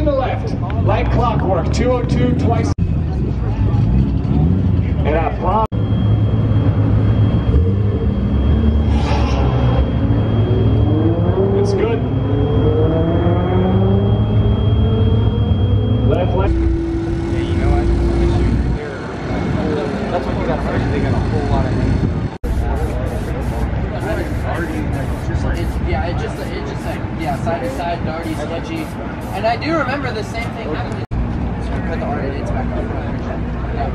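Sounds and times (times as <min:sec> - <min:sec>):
performance car engines running: 0:00.0 - 0:33.9
car engine accelerating: 0:00.7 - 0:22.4.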